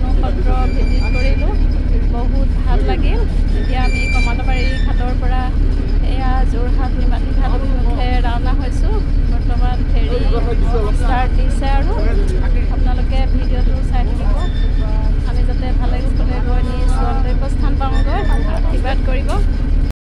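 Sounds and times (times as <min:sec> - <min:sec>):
people talking: 0:00.0 - 0:19.7
ferry engine drone: 0:00.0 - 0:19.9.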